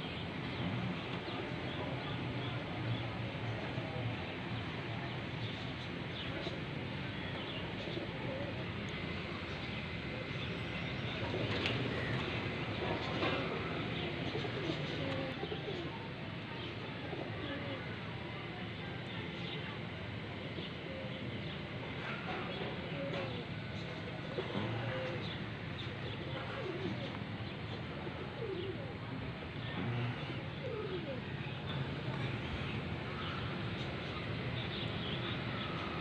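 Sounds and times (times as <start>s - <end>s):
outdoor background noise: 0.0s - 36.0s
pigeons cooing: 7.4s - 16.1s, 17.1s - 18.0s, 20.6s - 36.0s.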